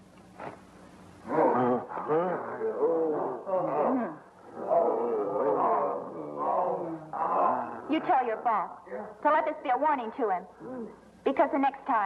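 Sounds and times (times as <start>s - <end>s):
men groaning in pain: 1.3s - 7.9s.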